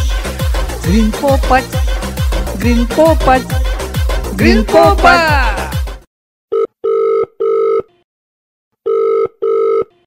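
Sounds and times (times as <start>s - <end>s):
telephone ringing tone: 6.5s - 8.0s, 8.8s - 10.0s.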